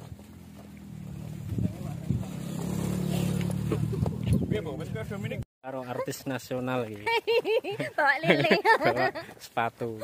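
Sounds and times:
motorcycle engine running: 0.0s - 5.4s.

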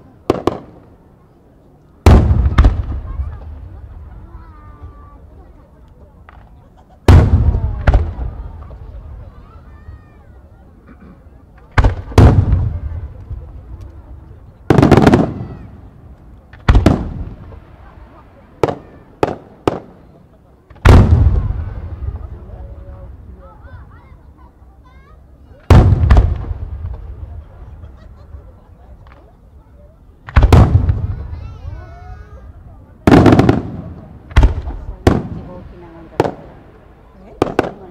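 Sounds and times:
fireworks booming: 0.0s - 0.9s, 2.0s - 5.1s, 6.2s - 9.9s, 11.2s - 23.2s, 25.6s - 29.2s, 30.2s - 37.9s
faint crowd voices: 0.0s - 37.9s
sharp firework cracks: 2.0s - 3.9s, 7.1s - 9.0s, 11.6s - 14.0s, 14.6s - 20.0s, 20.7s - 22.2s, 25.6s - 27.3s, 30.2s - 31.7s, 33.0s - 37.9s.

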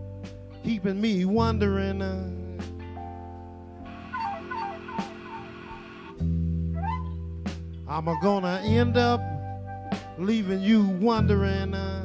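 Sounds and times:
lead instrument falling phrase: 3.9s - 6.2s
live band playing: 3.9s - 6.2s, 9.0s - 10.3s.

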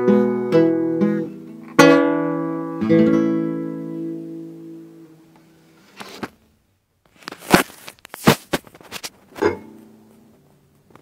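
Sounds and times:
guitar strings ringing: 0.0s - 5.2s, 9.4s - 10.2s
acoustic guitar chord ringing: 0.0s - 5.3s
handling knocks and rustles: 7.1s - 11.0s.

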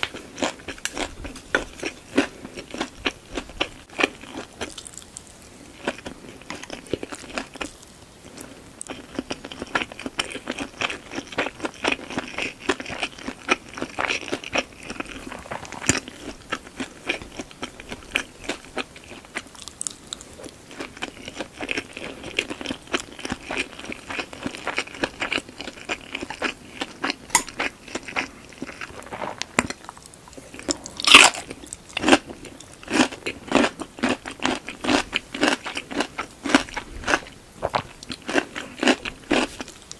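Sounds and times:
person chewing food: 0.0s - 39.9s.

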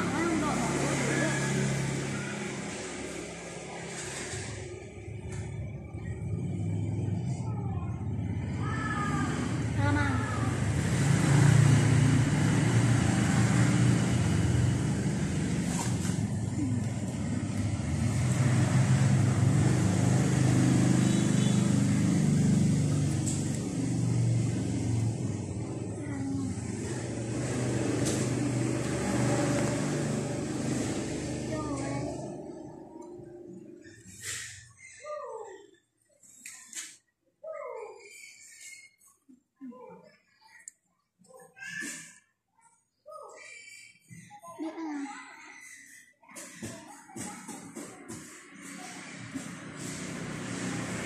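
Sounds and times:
vehicle engine rumbling: 0.0s - 35.0s, 47.6s - 51.0s.

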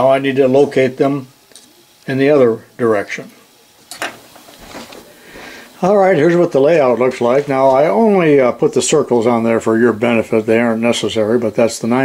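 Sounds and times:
man's voice: 5.8s - 12.0s.

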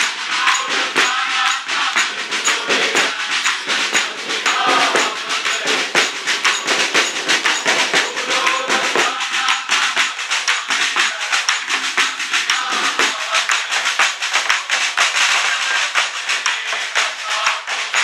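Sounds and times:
group singing a carol: 0.0s - 18.0s
rhythmic hand clapping: 0.0s - 18.0s.

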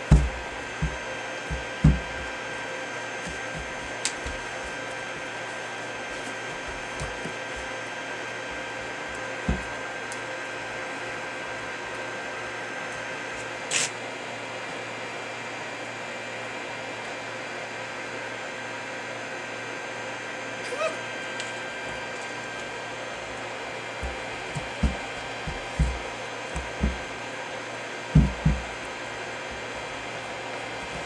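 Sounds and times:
soft thumps: 0.0s - 2.3s, 24.0s - 26.0s, 28.2s - 28.7s
steady hum: 0.0s - 14.2s, 20.5s - 31.0s.

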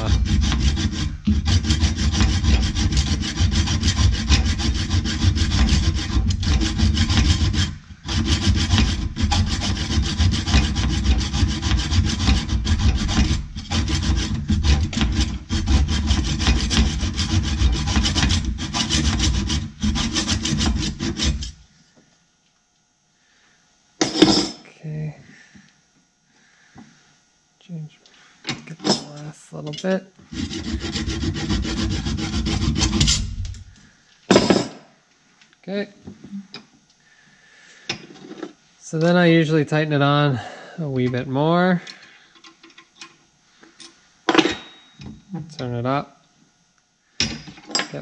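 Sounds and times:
metal knocks and scrapes: 30.4s - 34.8s.

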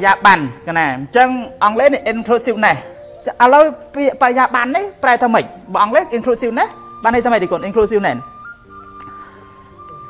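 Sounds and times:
simple electronic tune: 0.0s - 10.0s.

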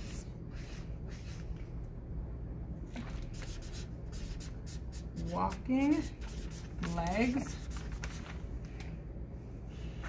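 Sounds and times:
marker scratching on paper: 0.0s - 1.5s, 3.2s - 8.2s.

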